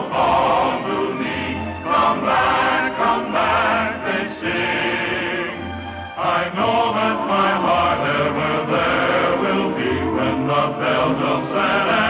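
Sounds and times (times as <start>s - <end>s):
choir singing with instruments: 0.0s - 12.0s.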